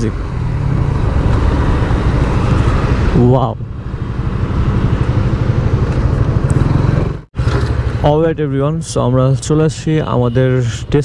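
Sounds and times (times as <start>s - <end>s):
motorcycle engine cruising: 0.0s - 8.2s.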